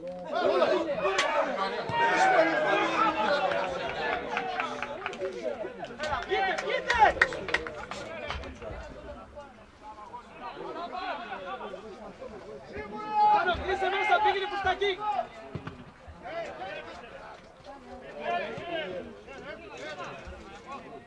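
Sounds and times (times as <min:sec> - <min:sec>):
men shouting: 0:00.3 - 0:07.3.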